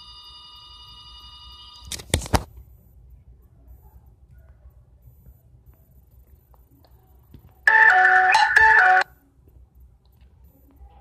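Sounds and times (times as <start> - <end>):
mobile phone ringtone: 0.0 - 1.9, 7.7 - 9.1.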